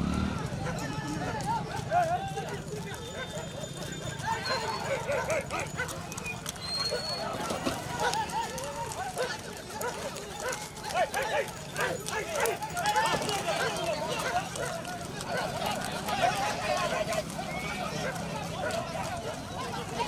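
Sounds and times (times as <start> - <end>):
horse hooves clopping on road: 0.0 - 20.0
men calling and shouting: 0.0 - 20.0.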